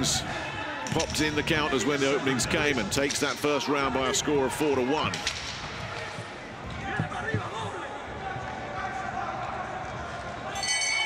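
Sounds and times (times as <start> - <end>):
boxing ring bell ringing: 10.6 - 11.0.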